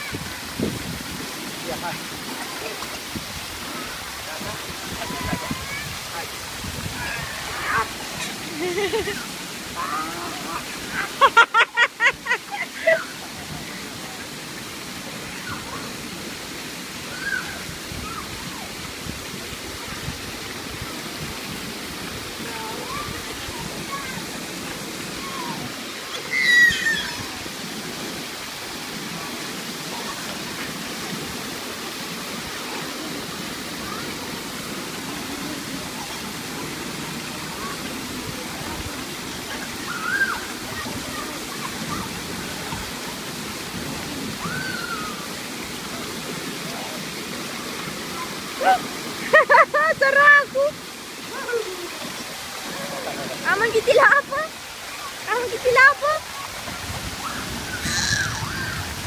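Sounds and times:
children's voices: 4.9s - 6.3s, 22.5s - 24.5s, 37.3s - 43.3s
child shrieking: 17.1s - 18.2s, 25.2s - 27.4s, 39.9s - 40.4s, 44.4s - 45.2s, 57.2s - 58.9s.

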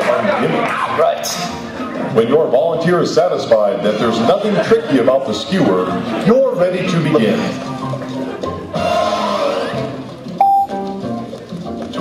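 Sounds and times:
light background music: 0.0s - 12.0s
electronic beep: 10.4s - 10.7s.

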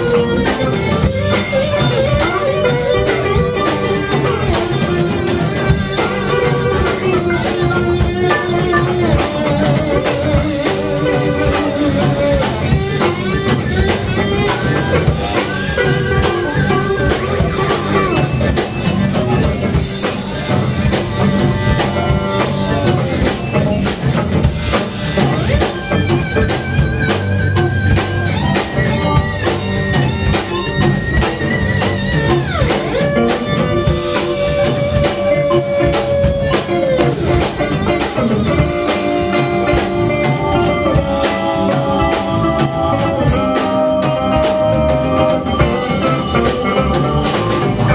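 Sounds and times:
live rock band playing: 0.0s - 47.9s.

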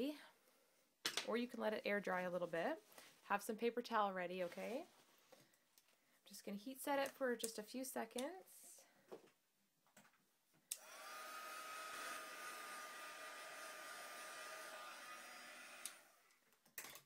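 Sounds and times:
heat gun fan hissing and whining: 10.7s - 16.2s.

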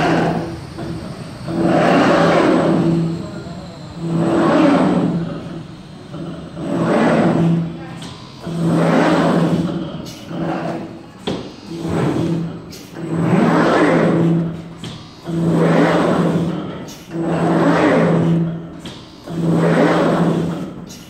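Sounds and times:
cutting machine motor whirring: 0.0s - 16.5s.

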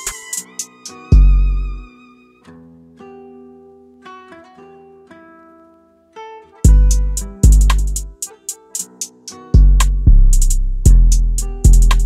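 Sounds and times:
drum machine ticks: 0.0s - 1.3s, 6.7s - 12.0s
plucked guitar notes: 0.0s - 12.0s
deep bass hit: 6.7s - 8.0s, 9.6s - 12.0s.

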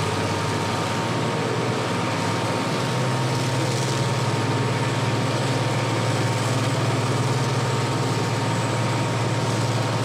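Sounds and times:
thin steady engine whine: 0.0s - 10.0s.

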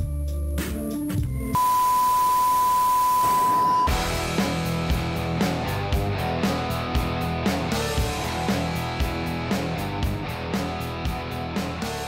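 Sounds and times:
high pure test beep: 1.6s - 4.0s
intro music: 3.2s - 12.0s
music with plucked guitar: 3.9s - 12.0s.

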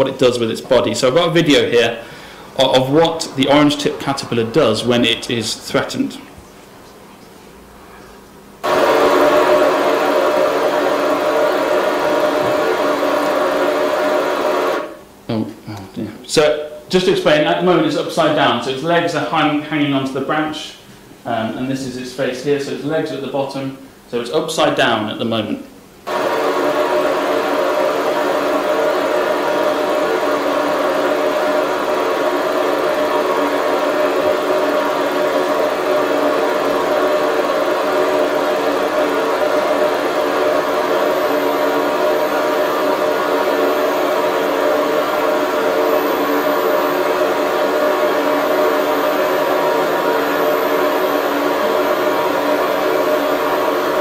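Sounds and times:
drone of held tones: 8.6s - 15.0s, 26.1s - 54.0s.

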